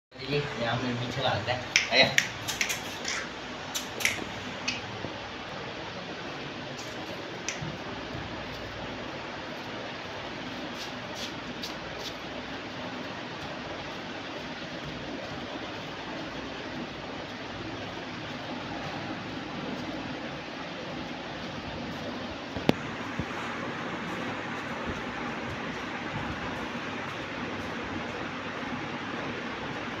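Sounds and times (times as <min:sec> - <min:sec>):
room noise hiss: 0:00.1 - 0:30.0
sharp click: 0:01.8 - 0:04.9.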